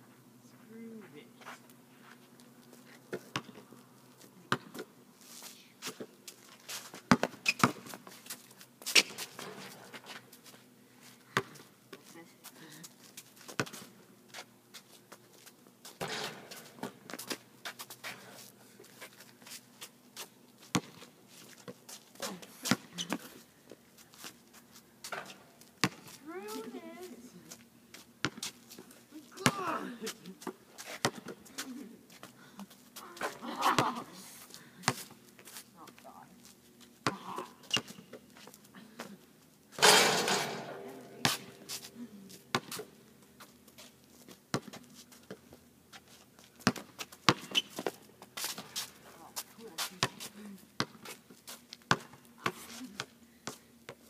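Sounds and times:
basketball bouncing on asphalt: 0:03.1 - 0:03.6, 0:04.5 - 0:04.9, 0:07.1 - 0:08.1, 0:13.5 - 0:13.9, 0:20.7 - 0:21.0, 0:25.1 - 0:26.2, 0:28.2 - 0:28.6, 0:31.0 - 0:31.4, 0:37.0 - 0:38.0, 0:42.5 - 0:42.9, 0:44.5 - 0:45.4, 0:46.6 - 0:48.0, 0:50.0 - 0:51.1, 0:51.8 - 0:52.6
ball hitting backboard and rim: 0:39.8 - 0:41.6.

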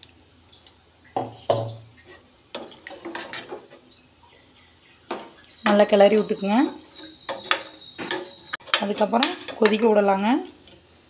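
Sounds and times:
metal ladle scraping a pan: 0:01.2 - 0:03.8, 0:05.1 - 0:10.1.

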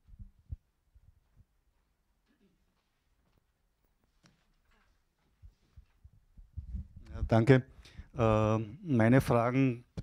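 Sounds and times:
microphone handling thumps: 0:05.4 - 0:07.4.

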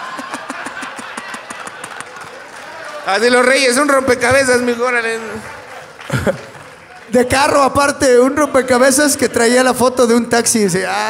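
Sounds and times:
man laughing into microphone: 0:00.0 - 0:02.0, 0:06.1 - 0:06.6.

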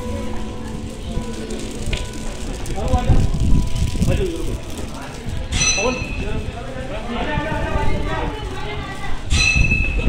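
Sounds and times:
low rumble on microphone: 0:00.0 - 0:10.0
people talking indistinctly: 0:00.0 - 0:10.0.

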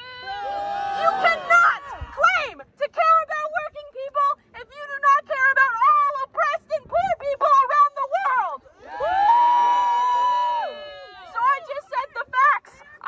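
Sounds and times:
woman shouting through megaphone: 0:00.9 - 0:08.6, 0:11.2 - 0:13.0.

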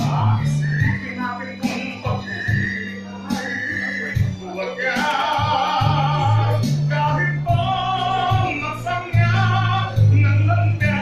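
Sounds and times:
backing track with bass beat: 0:00.0 - 0:11.0
man singing into microphone: 0:00.0 - 0:11.0.

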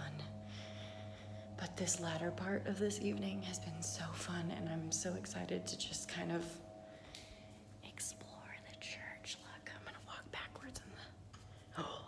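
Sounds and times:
faint low hum: 0:00.0 - 0:12.0
woman whispering: 0:07.8 - 0:11.2.

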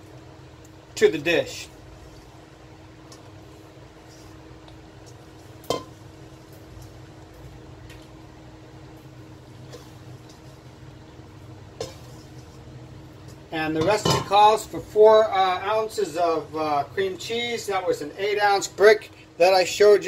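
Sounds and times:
steady low hum: 0:00.0 - 0:20.0
kitchenware clinking: 0:05.6 - 0:06.0, 0:13.8 - 0:14.4.

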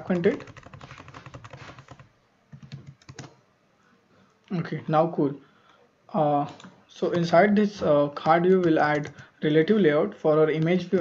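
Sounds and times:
computer keyboard typing: 0:00.0 - 0:03.4, 0:08.2 - 0:09.3.

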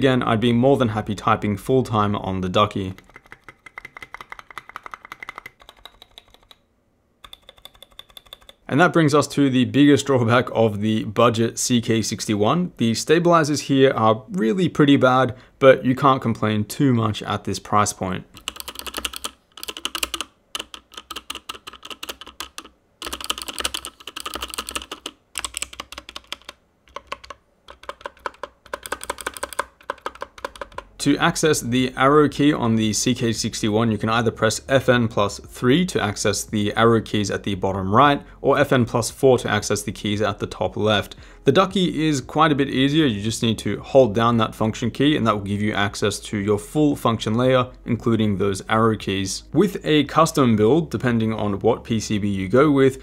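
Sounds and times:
mechanical keyboard clacking: 0:02.8 - 0:06.6, 0:07.2 - 0:08.6, 0:18.4 - 0:31.0.

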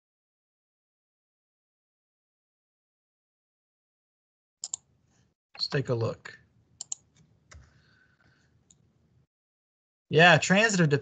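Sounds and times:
computer mouse click: 0:04.6 - 0:04.8, 0:06.8 - 0:07.8.

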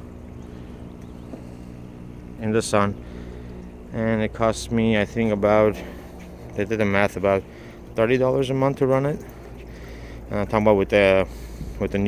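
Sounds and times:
pumps humming: 0:00.0 - 0:12.0.

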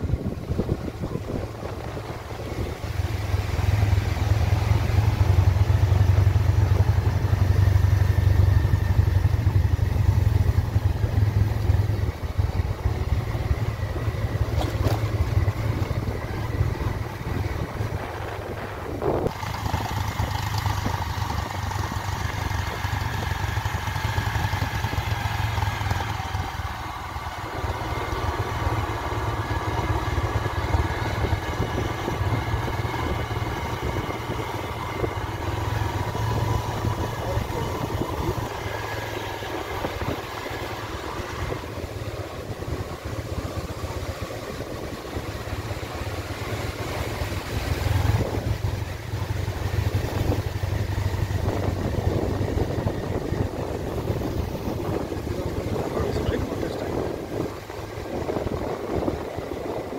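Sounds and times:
wind rumble on microphone: 0:00.0 - 0:04.0, 0:13.8 - 0:23.3, 0:48.0 - 0:59.9
motorcycle engine running: 0:00.0 - 0:59.9.

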